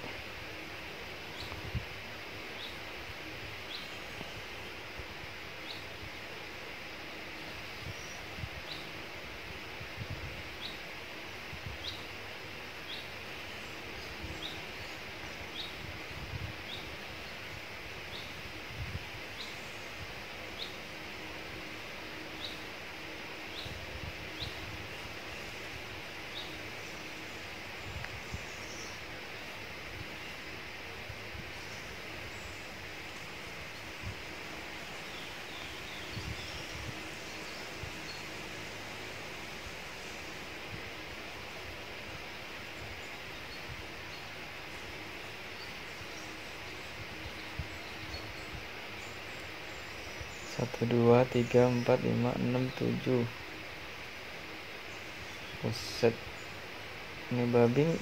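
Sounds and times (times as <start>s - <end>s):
steady hiss: 0.0s - 58.0s.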